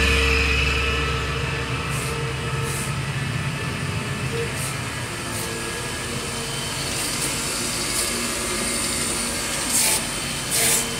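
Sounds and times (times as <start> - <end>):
grinding wheel hissing on steel: 4.5 - 10.9.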